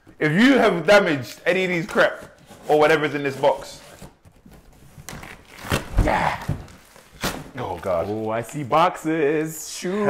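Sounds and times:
packing tape being peeled: 4.9s - 6.0s.

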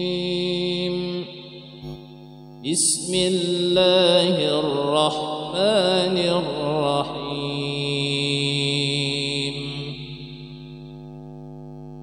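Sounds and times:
man chanting recitation: 0.0s - 2.0s, 2.6s - 10.7s.

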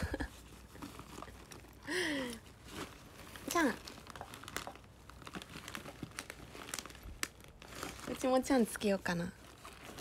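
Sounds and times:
handling noise clicks and crinkles: 0.3s - 10.0s.

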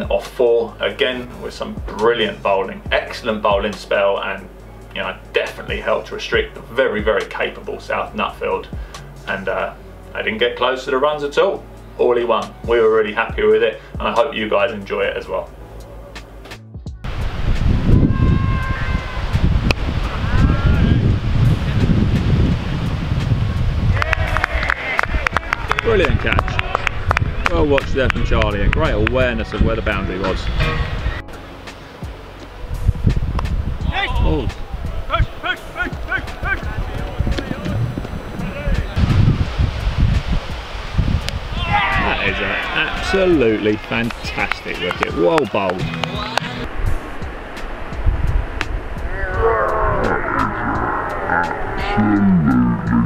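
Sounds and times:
wind buffeting microphone: 17.0s - 31.3s, 32.0s - 51.9s
distant shouts: 18.1s - 19.4s, 20.0s - 21.0s, 23.9s - 27.5s, 33.8s - 39.0s, 41.4s - 43.4s, 49.0s - 52.2s
faint voices: 49.0s - 53.0s.

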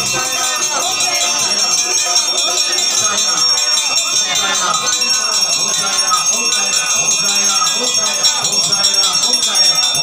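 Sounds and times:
temple bells ringing: 0.0s - 10.0s
voices singing or chanting: 0.0s - 10.0s.

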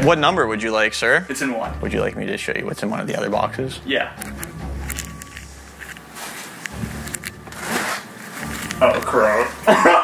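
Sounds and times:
cardboard box rustling and scraping: 7.5s - 8.7s.

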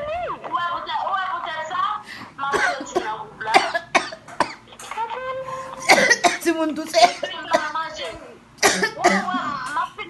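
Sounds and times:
person coughing: 2.6s - 4.7s, 5.8s - 9.6s.

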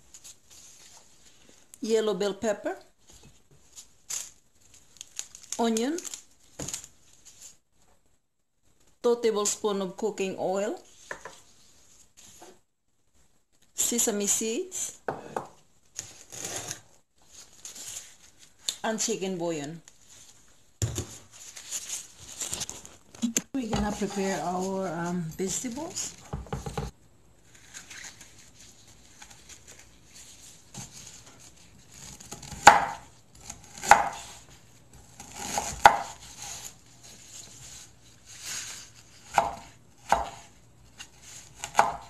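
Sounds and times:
knife slicing and scraping: 16.0s - 16.9s, 35.1s - 42.0s.

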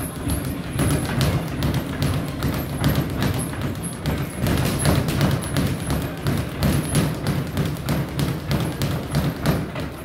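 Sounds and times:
knocks and thuds: 0.0s - 10.0s.

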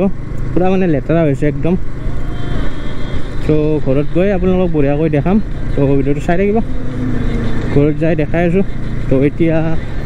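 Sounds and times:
man talking: 0.0s - 1.8s, 3.4s - 6.7s, 7.7s - 9.9s
motorcycle engine running: 0.0s - 10.0s.

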